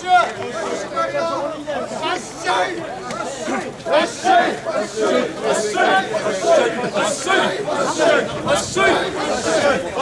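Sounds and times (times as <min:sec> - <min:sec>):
men's voices chattering and calling out: 0:00.0 - 0:10.0.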